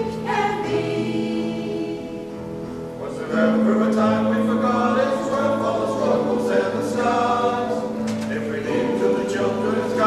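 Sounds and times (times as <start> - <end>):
mixed choir singing in harmony: 0.0 - 10.0.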